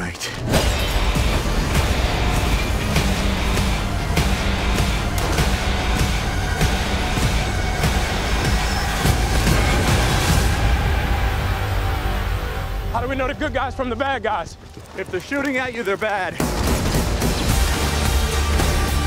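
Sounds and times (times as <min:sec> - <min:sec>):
trailer music with low rumble: 0:00.0 - 0:15.0, 0:16.4 - 0:19.0.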